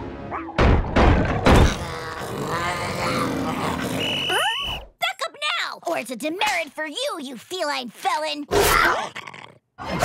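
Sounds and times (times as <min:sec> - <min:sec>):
cartoon animal growling: 0:01.5 - 0:04.4, 0:08.5 - 0:10.0.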